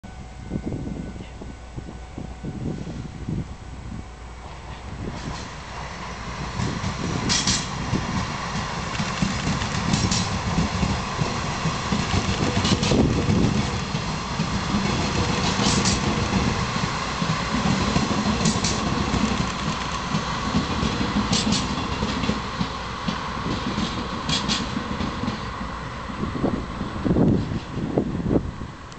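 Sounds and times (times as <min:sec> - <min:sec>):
diesel locomotive rumble: 0:00.0 - 0:28.9
wheels clicking over rail joints: 0:06.5 - 0:25.6.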